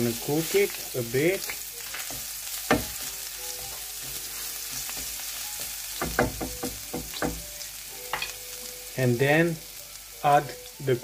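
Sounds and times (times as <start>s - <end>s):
garlic sizzling in hot oil: 0.0s - 11.0s
wooden spoon knocking against pan: 6.0s - 7.5s.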